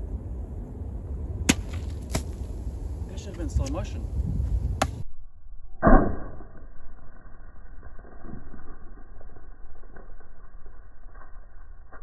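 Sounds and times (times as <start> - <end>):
low wind rumble: 0.0 - 5.8.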